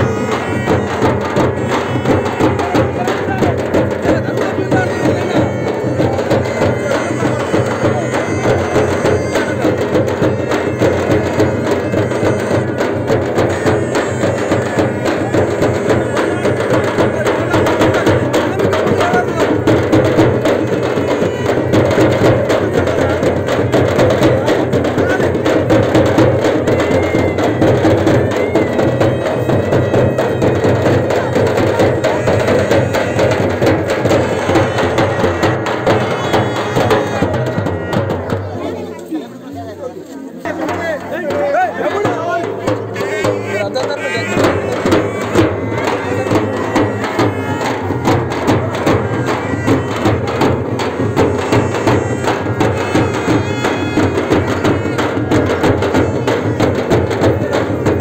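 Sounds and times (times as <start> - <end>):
crowd voices: 0.0 - 58.0
frame drums beaten rapidly: 0.0 - 58.0.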